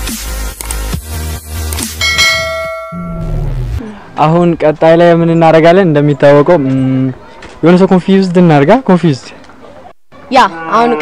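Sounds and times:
electronic music with a beat: 0.0 - 3.7
bright bell chime: 2.0 - 3.4.

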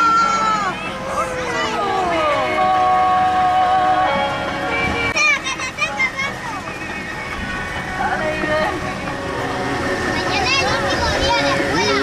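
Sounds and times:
people talking: 0.0 - 3.8, 5.1 - 9.1, 10.1 - 12.0
vehicle running rumble: 0.0 - 12.0.

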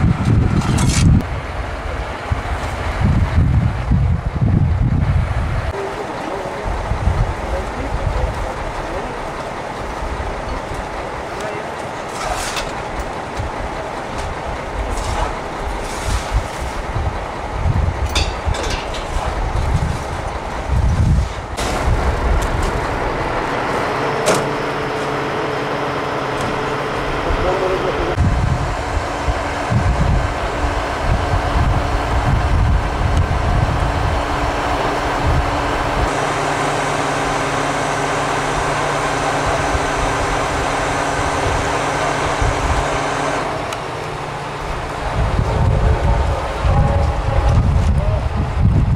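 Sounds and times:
diesel truck engine running: 0.0 - 48.9
wind gusting on microphone: 0.0 - 48.9
background voices: 5.6 - 16.8, 44.1 - 48.6.

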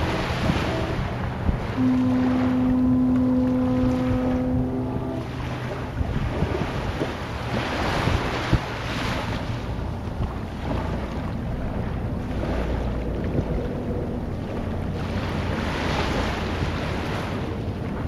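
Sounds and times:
low rumble: 0.0 - 7.7, 8.7 - 18.0.

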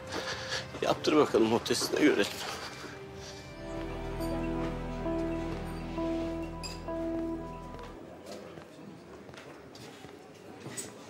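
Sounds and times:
soft background score: 0.0 - 8.4.

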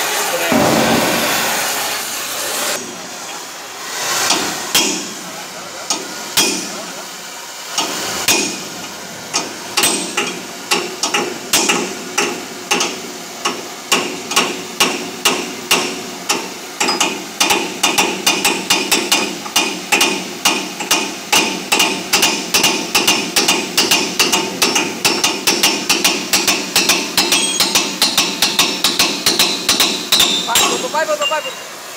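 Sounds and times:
gas torch flame hissing: 0.0 - 21.3.

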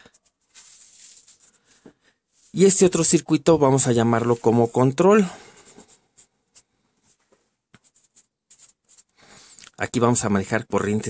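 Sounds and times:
pen scratching on paper: 4.0 - 7.2, 7.8 - 9.1.

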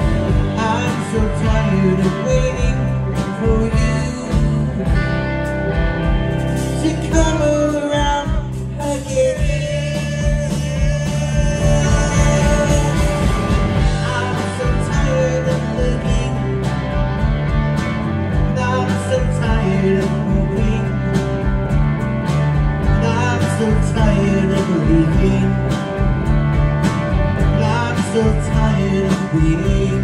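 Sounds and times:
live rock band playing: 0.0 - 30.0
drum and cymbal hits: 9.4 - 30.0.

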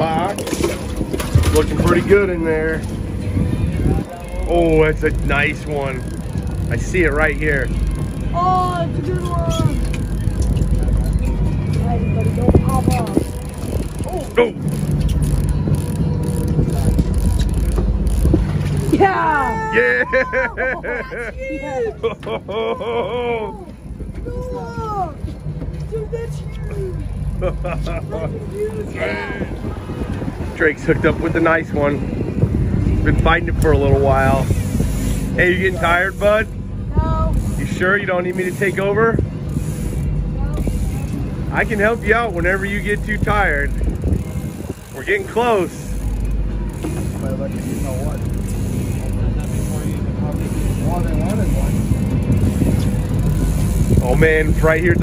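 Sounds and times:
boat engine rumbling: 0.0 - 55.0
fishing reel clicking: 4.3 - 19.0, 37.3 - 55.0.

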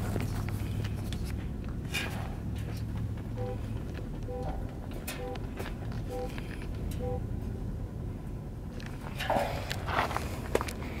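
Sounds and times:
low steady rumble: 0.0 - 11.0
footsteps on stony ground: 8.9 - 11.0.

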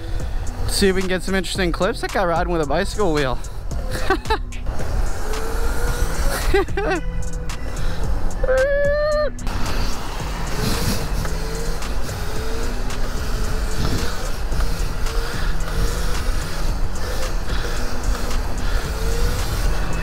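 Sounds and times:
road and traffic noise: 0.0 - 20.0
wind rushing on microphone: 7.6 - 20.0.

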